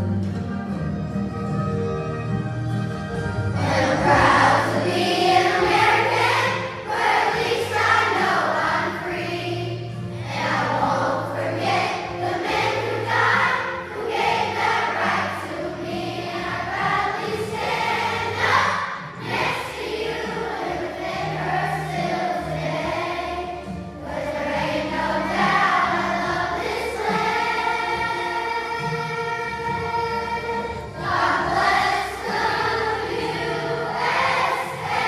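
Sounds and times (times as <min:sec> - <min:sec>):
instrumental accompaniment: 0:00.0 - 0:35.0
children's choir singing: 0:03.2 - 0:35.0.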